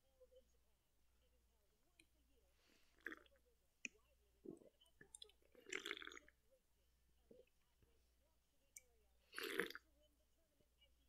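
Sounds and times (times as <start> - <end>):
person gulping drink: 3.0 - 6.4, 9.3 - 9.8.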